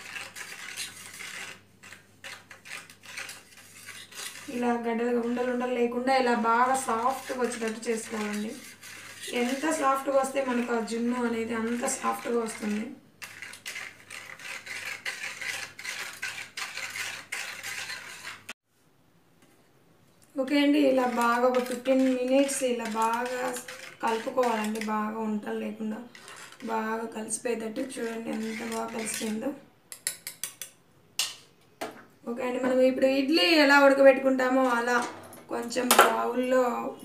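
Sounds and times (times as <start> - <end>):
whisk beating in metal bowl: 0.0 - 18.6, 20.4 - 29.4.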